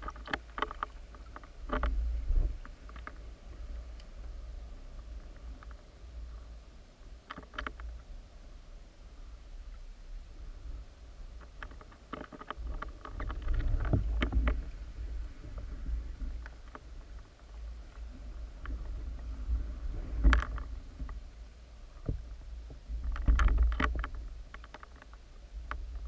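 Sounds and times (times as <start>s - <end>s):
sharp underwater clicks and knocks: 0.0s - 5.9s, 7.2s - 8.1s, 11.3s - 21.3s, 22.0s - 26.0s.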